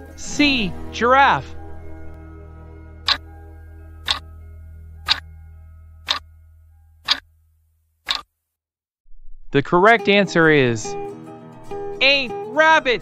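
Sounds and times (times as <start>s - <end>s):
soft background music: 0.0s - 7.1s, 9.8s - 13.0s
clock ticks: 8.1s - 8.3s.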